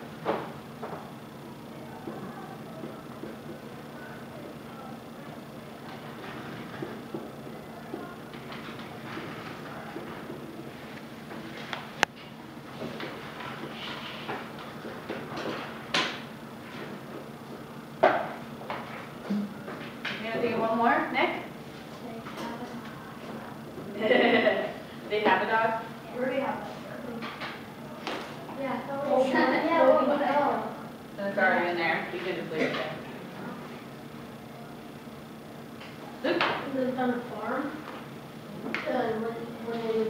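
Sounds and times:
room hum: 0.0s - 40.0s
low classroom speech: 0.8s - 12.0s, 12.6s - 40.0s.

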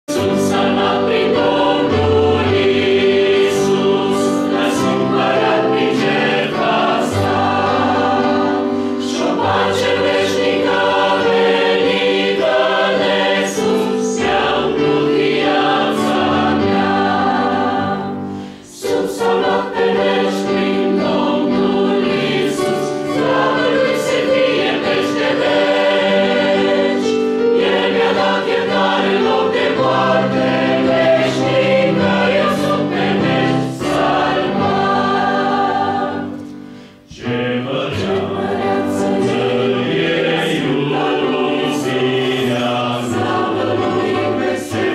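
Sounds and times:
women's choir singing chords: 0.1s - 44.9s.

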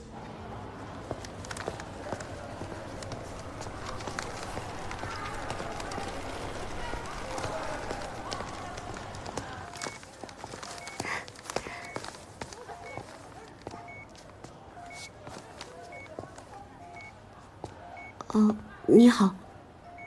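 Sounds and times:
murmur of indistinct voices: 0.0s - 20.0s
footsteps on hard floor: 1.1s - 16.5s
electronic two-tone beep: 16.8s - 17.1s.

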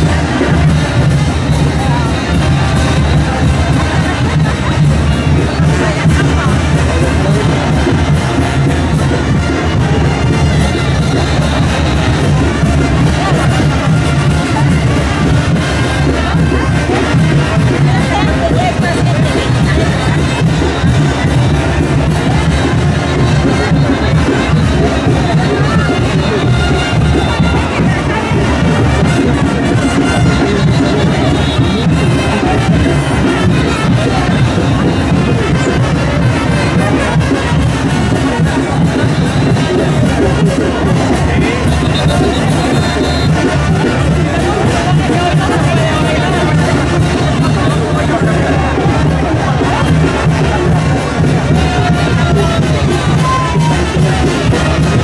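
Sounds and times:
brass band playing dance music: 0.0s - 55.0s
crowd chattering: 0.0s - 55.0s.

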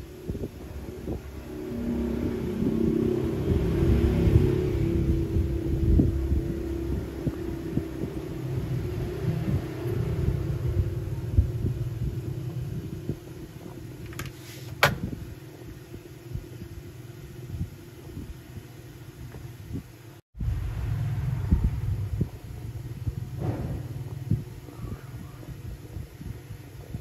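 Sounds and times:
faint hum: 0.0s - 27.0s
low background rumble: 0.0s - 27.0s.

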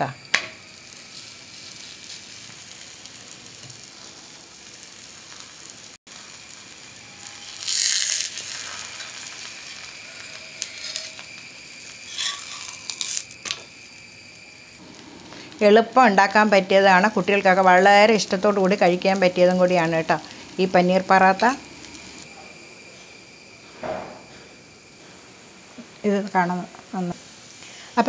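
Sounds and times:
faint steady hiss: 0.0s - 28.0s
flatbread sizzling on a griddle: 0.0s - 28.0s.

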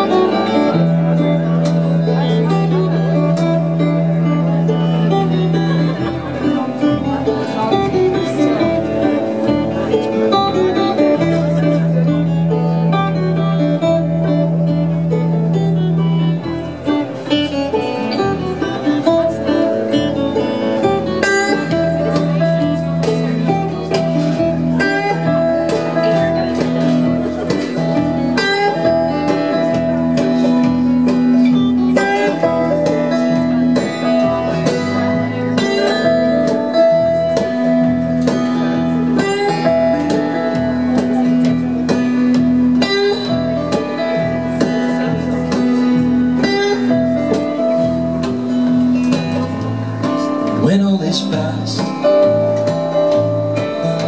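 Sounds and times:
drum kit: 0.0s - 54.0s
electric guitar: 0.0s - 54.0s
strummed acoustic guitar: 0.0s - 54.0s.

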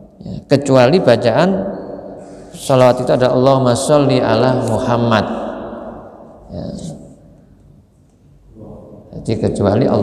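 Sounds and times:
low steady hum: 0.0s - 10.0s
man speaking: 2.5s - 7.2s, 8.6s - 10.0s.

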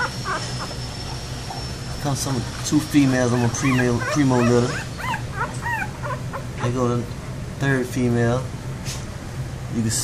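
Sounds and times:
puppies squeaking: 0.0s - 6.8s.

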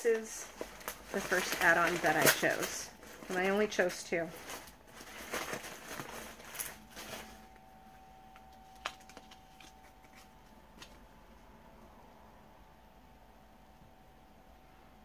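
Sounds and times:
packing material rustling: 0.0s - 11.1s
faint steady hum: 0.0s - 15.0s.

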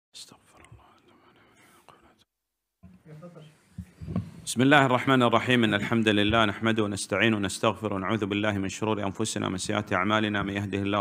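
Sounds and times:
faint whispering: 0.2s - 2.3s
microphone handling clicks: 3.8s - 4.5s.

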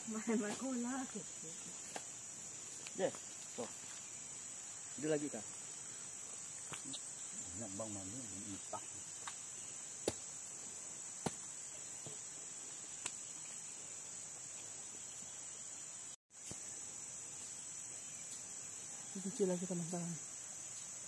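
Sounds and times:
insects chorus: 0.0s - 21.0s.

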